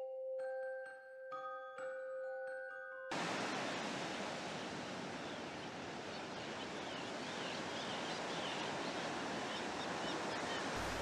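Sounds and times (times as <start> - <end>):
glockenspiel-like chime notes: 0.0 - 3.1
ocean surf washing on shore: 3.1 - 11.0.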